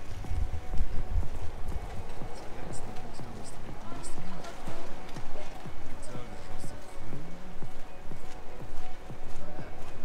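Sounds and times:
footsteps on pavement: 0.0 - 10.0.

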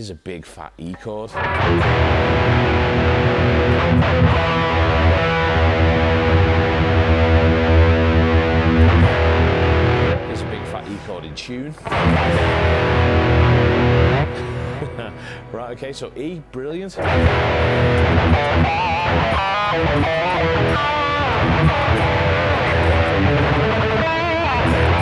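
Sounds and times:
distorted electric guitar chord: 1.4 - 15.8, 17.0 - 25.0.

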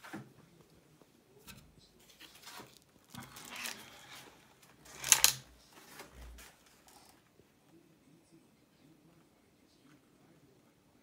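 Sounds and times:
rustling and scraping on plastic: 1.4 - 7.2.

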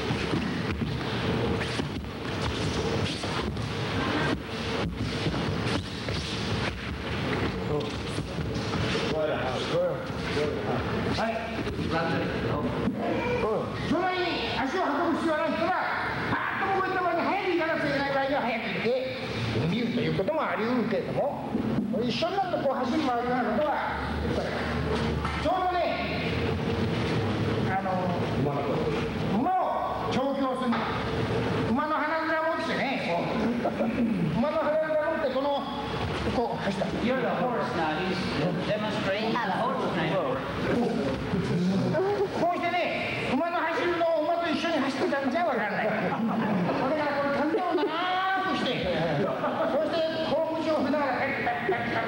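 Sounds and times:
continuous hiss: 0.0 - 52.0
noisy hall background: 0.0 - 52.0.

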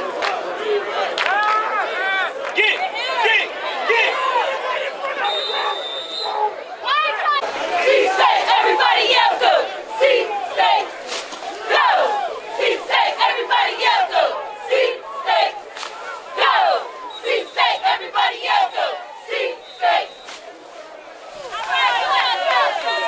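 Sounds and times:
squad shouting a cheer: 0.0 - 20.3, 21.3 - 23.0.

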